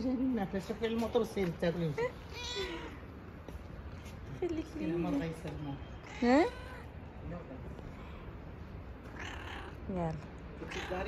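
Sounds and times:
cat meowing: 2.2s - 3.1s, 6.0s - 7.0s, 9.0s - 9.9s, 10.6s - 11.0s.

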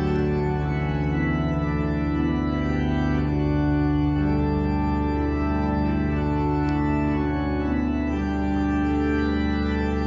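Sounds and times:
church organ chords: 0.0s - 10.0s.

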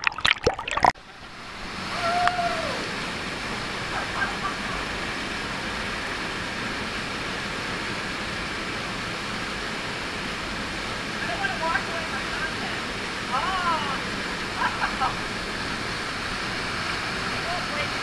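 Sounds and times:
waterfall rushing: 0.7s - 18.0s.

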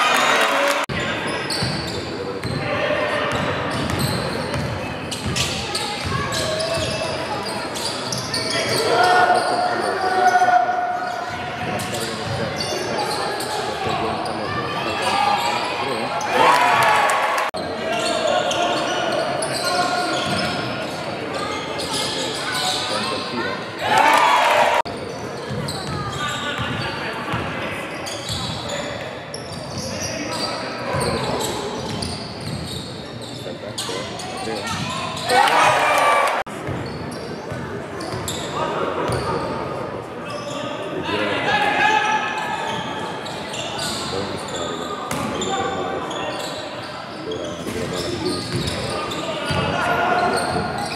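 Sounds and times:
sneakers squeaking: 0.1s - 16.9s, 17.6s - 24.2s, 24.8s - 39.6s, 40.2s - 40.8s, 42.4s - 50.9s.

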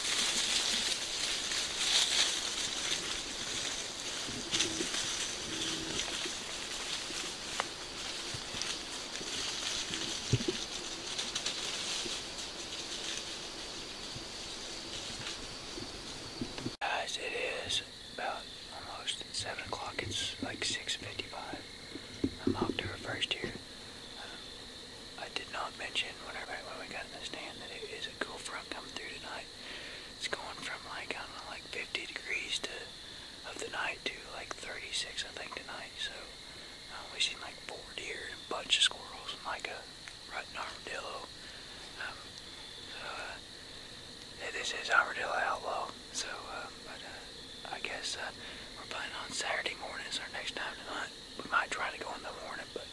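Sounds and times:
woodland hiss: 0.0s - 52.9s
man whispering: 16.8s - 21.7s, 22.4s - 23.6s, 24.2s - 24.5s, 25.2s - 42.3s, 42.9s - 43.4s, 44.4s - 52.9s.

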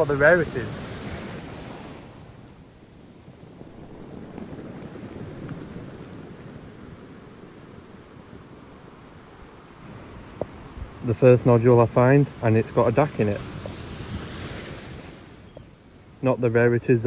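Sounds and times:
distant surf: 0.0s - 17.0s
wind buffeting microphone: 0.0s - 17.0s.

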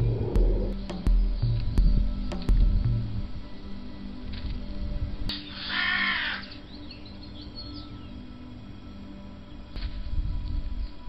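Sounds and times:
small birds chirping: 0.0s - 3.1s, 5.3s - 8.4s
harsh cawing bird call: 5.4s - 6.7s.

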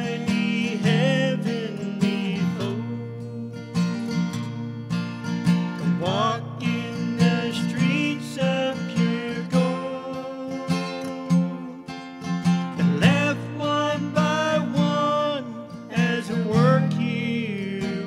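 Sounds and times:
person singing: 0.0s - 4.6s, 5.8s - 18.0s
acoustic guitar strumming: 0.0s - 18.0s.

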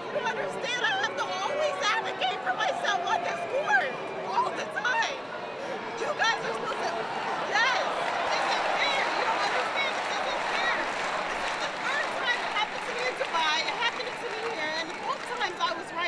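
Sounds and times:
crowd babble: 0.0s - 16.0s.

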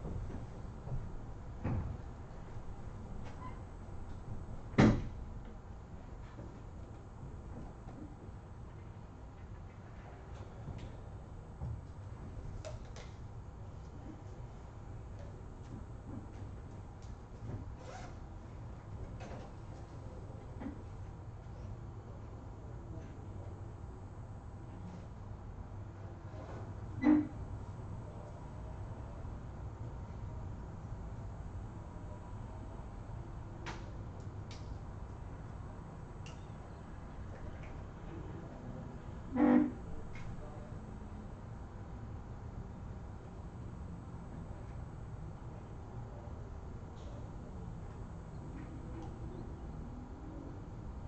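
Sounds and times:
low steady room hum: 0.0s - 51.0s
short horn-like tone: 39.3s - 39.9s.

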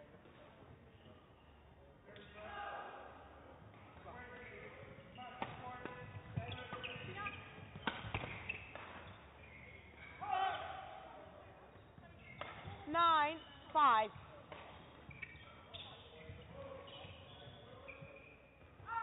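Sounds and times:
shoes squeaking on court: 3.8s - 19.0s
rackets hitting shuttlecock: 5.3s - 10.8s, 12.2s - 12.8s, 14.2s - 18.9s.

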